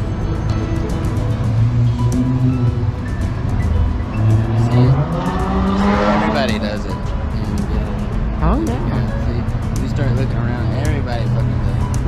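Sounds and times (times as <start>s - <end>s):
background music with low notes: 0.0s - 12.0s
car engine revving: 0.0s - 12.0s.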